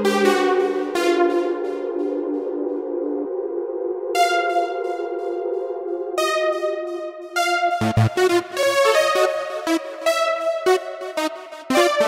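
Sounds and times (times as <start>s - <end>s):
sustained synthesizer chords: 0.0s - 12.0s.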